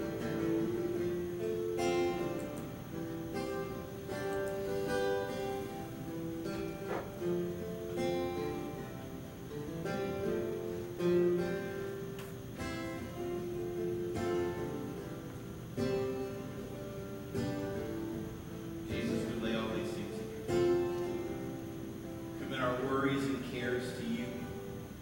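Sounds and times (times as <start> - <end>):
strummed acoustic guitar: 0.0 - 25.0.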